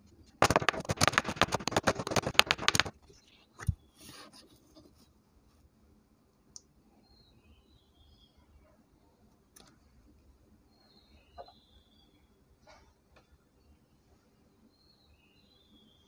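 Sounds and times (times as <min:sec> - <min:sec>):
paper thump on mat: 0:00.4 - 0:02.9
paper crackling: 0:00.4 - 0:04.4.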